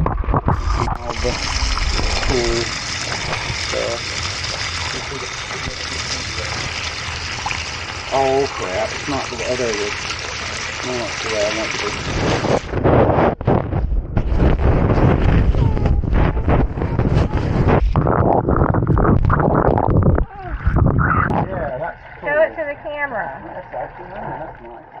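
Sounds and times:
fingers rubbing on camera microphone: 12.2s - 21.5s
high wavering voice-like sounds: 15.2s - 21.5s.

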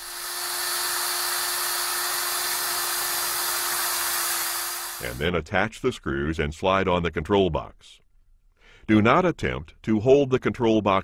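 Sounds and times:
cordless drill drilling metal: 0.0s - 5.2s.

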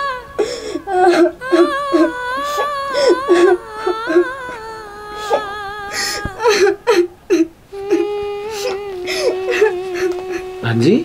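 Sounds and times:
girl sobbing and whimpering: 0.0s - 10.8s.

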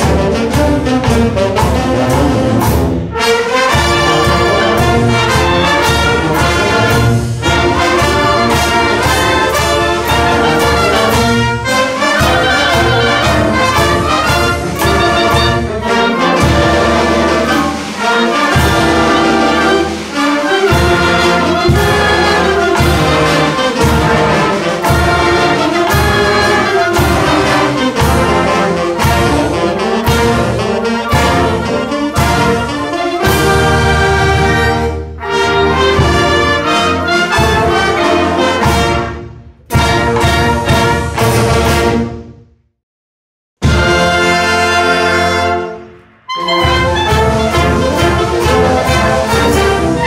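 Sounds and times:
wind band playing: 0.0s - 42.4s, 43.6s - 50.0s.

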